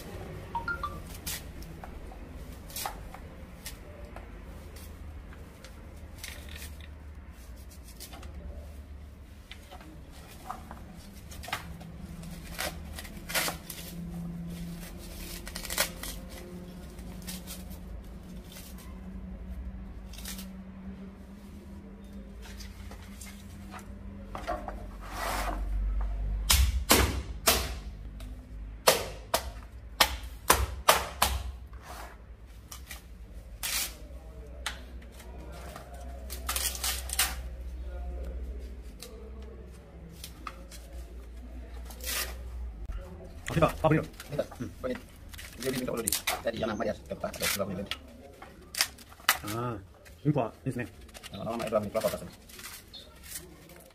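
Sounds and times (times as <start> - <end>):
dry fruit pieces rustling on plastic: 43.4 - 53.9.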